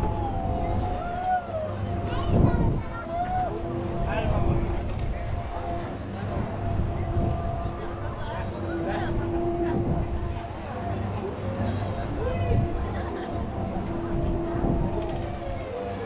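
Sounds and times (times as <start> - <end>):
ride machinery rumble and hum: 0.0 - 16.0
scattered voices: 0.0 - 16.0.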